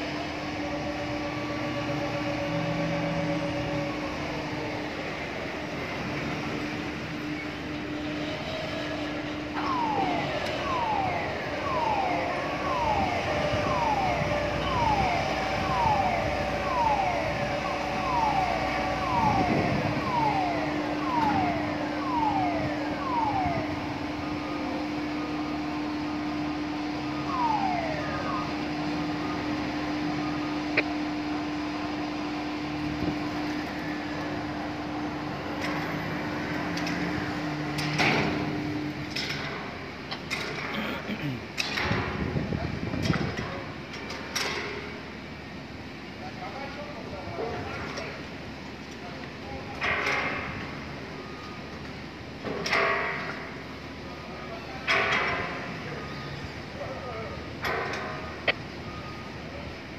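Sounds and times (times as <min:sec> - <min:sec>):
machinery hum: 0:00.0 - 0:59.9.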